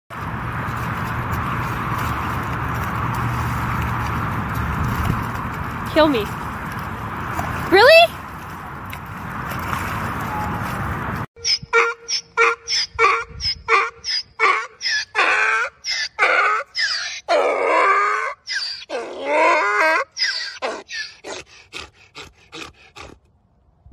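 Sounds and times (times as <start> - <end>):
donkey braying: 11.4 - 23.2.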